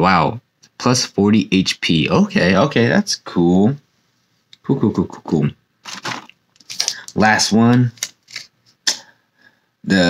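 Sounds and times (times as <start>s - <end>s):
foil pack crinkling: 5.8s - 7.2s.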